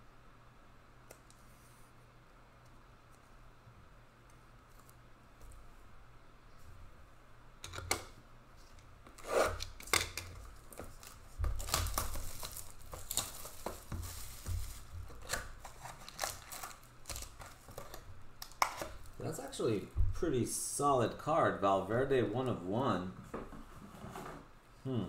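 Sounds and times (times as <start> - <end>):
plastic wrapping crinkling: 9.5 - 19.4.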